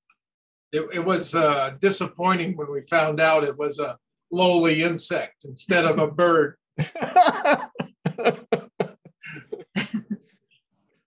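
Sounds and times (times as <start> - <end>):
person laughing: 6.8 - 10.2.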